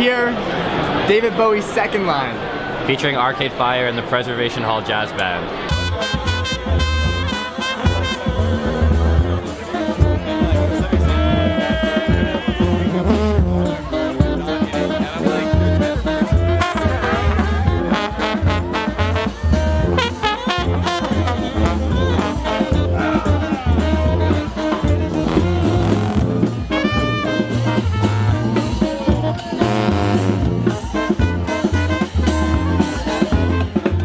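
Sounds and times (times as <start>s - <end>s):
brass band playing jazz: 5.6s - 34.0s.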